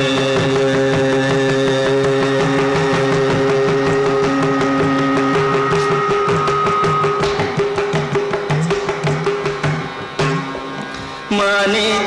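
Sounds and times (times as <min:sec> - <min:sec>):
hand-drum strokes: 0:00.0 - 0:11.4
melodic line over a drone: 0:01.1 - 0:08.0.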